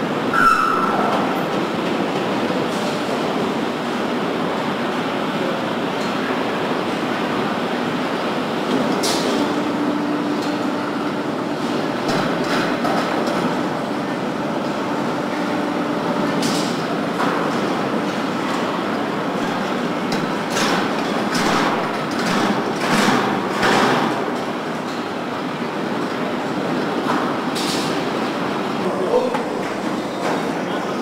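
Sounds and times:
conveyor machinery noise: 0:00.0 - 0:31.0.

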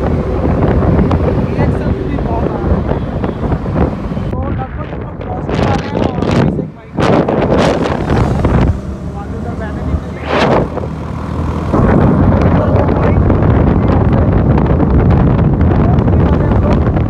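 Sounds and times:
motorcycle engine idling and revving: 0:00.0 - 0:04.3, 0:05.4 - 0:17.0
wind noise on microphone: 0:00.0 - 0:17.0.

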